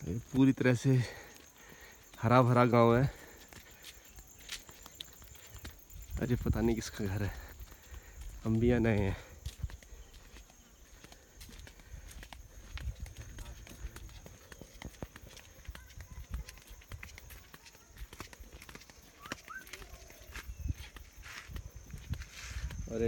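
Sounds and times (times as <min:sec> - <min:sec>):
footsteps on dirt path: 0:00.0 - 0:23.0.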